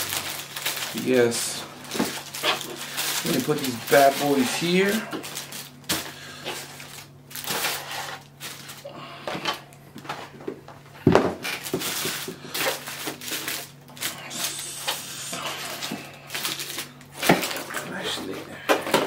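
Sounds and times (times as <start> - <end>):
food wrappers crinkling: 0.0 - 8.9, 11.4 - 18.4.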